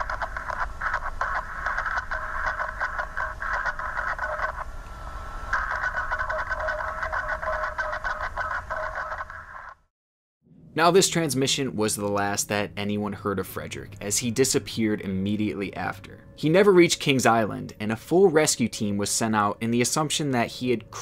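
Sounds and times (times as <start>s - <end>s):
radio transmission crackle: 0.0s - 9.9s.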